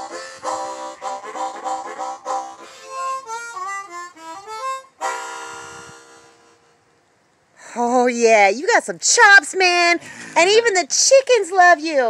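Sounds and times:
harmonica chord: 0.0 - 7.0.

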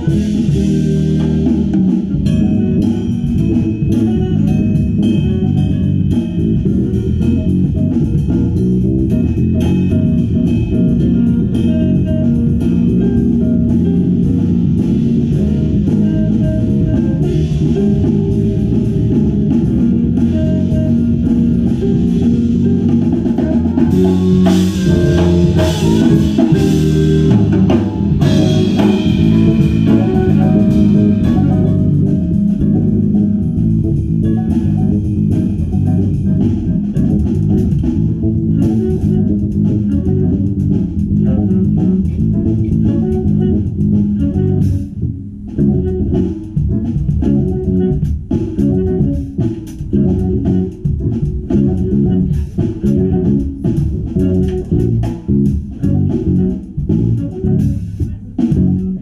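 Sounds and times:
electric bass guitar notes: 0.0 - 59.0
live jazz combo playing: 0.0 - 59.0.

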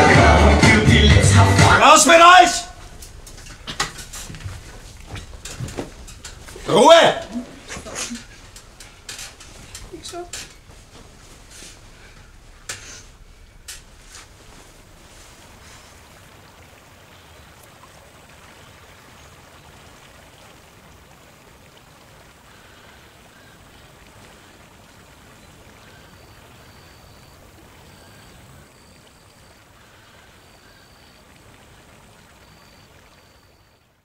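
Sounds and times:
even rushing noise: 1.2 - 17.4.

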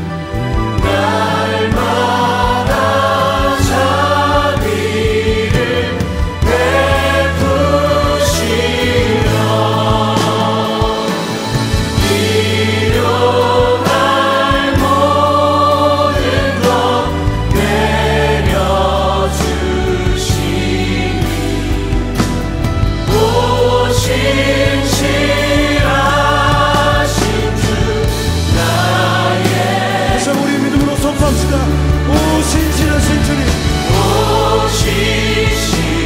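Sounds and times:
group singing a hymn: 0.0 - 36.0
steady bass line: 0.0 - 36.0.

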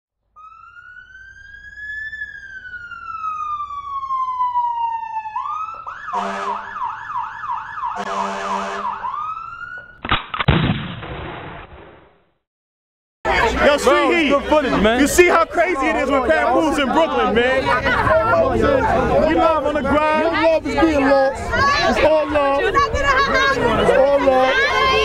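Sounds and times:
siren wailing and yelping: 0.4 - 10.0
loud sudden hit: 10.5 - 12.2.

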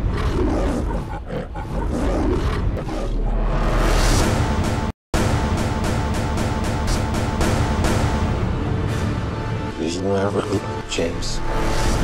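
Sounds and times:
lion roaring: 0.0 - 3.7.

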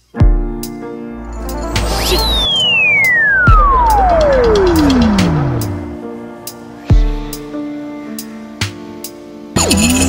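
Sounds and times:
background music: 0.0 - 10.0
descending whistle tone: 1.7 - 6.0
deep bass boom: 3.3 - 5.8.

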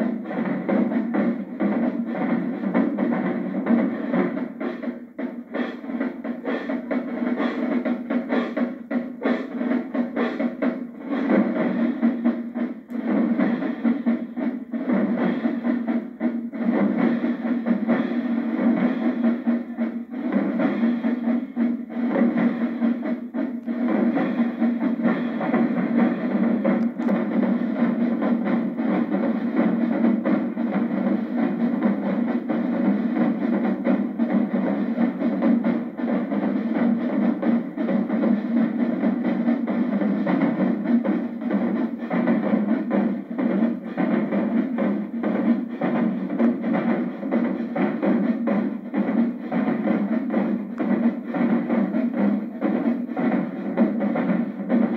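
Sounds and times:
bass drums: 0.0 - 54.9
snare drums: 0.0 - 54.9.

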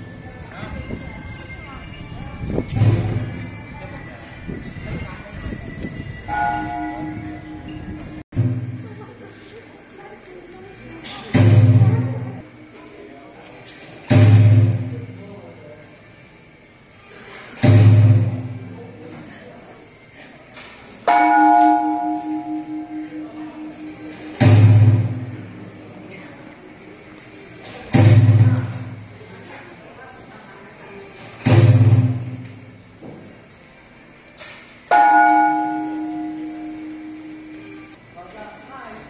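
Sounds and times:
temple bell ringing: 6.3 - 8.8, 21.1 - 25.4, 34.9 - 38.0.

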